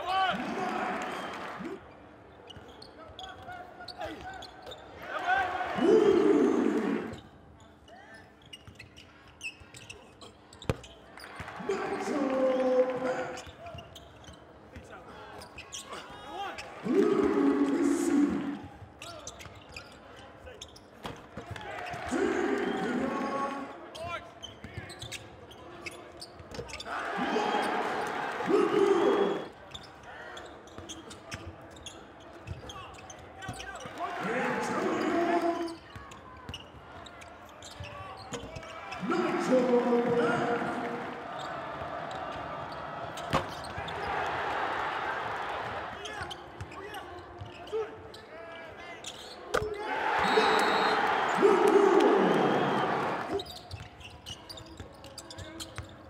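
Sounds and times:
people shouting and cheering: 0.0 - 1.8, 5.0 - 7.2, 11.2 - 13.4, 16.0 - 18.8, 21.5 - 24.1, 26.8 - 30.3, 33.4 - 35.8, 38.5 - 48.0, 48.6 - 53.5
sneakers squeaking: 2.3 - 4.9, 7.1 - 16.8, 18.7 - 22.0, 22.7 - 44.3, 46.0 - 56.0.

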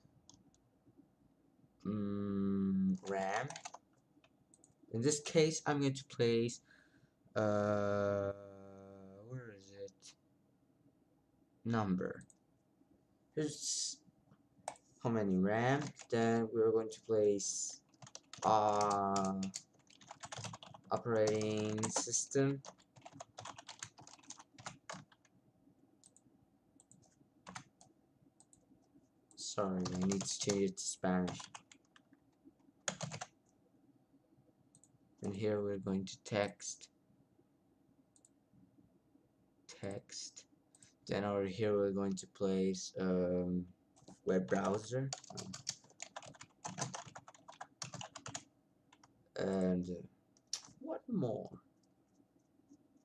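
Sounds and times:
typing on computer keyboard: 3.0 - 3.8, 15.7 - 16.2, 17.7 - 25.3, 26.8 - 27.9, 29.8 - 30.6, 31.2 - 32.2, 32.8 - 33.3, 44.0 - 49.1.

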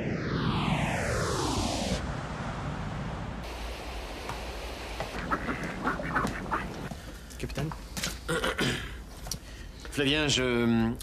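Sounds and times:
steady background hiss: 2.0 - 11.0
ducks quacking: 5.1 - 6.9.

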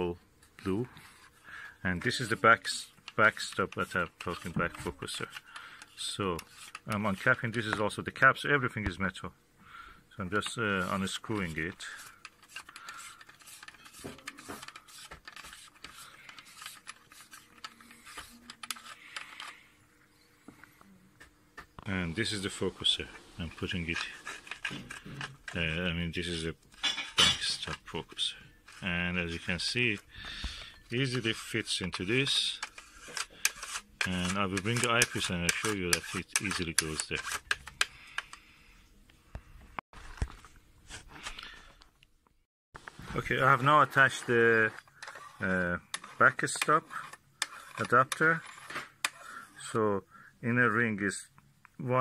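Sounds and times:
hands clicking and tapping parts: 2.1 - 7.9, 10.3 - 19.6, 23.4 - 38.4.

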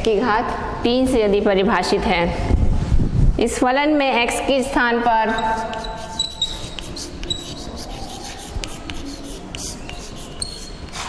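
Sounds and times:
writing tool squeaks: 5.3 - 11.0
taps and scratches on a board: 5.4 - 11.0.

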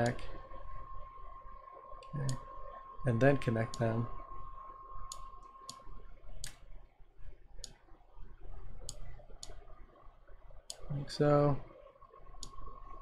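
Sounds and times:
computer mouse clicking: 3.7 - 3.9, 5.0 - 5.8, 8.8 - 9.6, 12.4 - 12.6.

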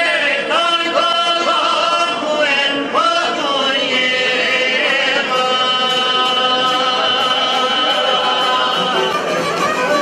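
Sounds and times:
men singing together: 0.0 - 9.3
long-necked lutes: 4.8 - 10.0
bowed violin: 5.9 - 10.0.

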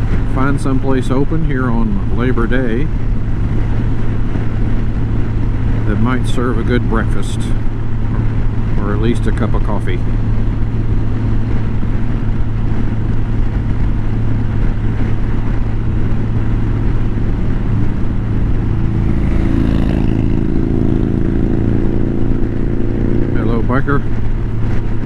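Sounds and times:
motorcycle engine drone: 0.0 - 25.0
wind and road noise: 0.0 - 25.0
higher hums: 10.0 - 25.0.

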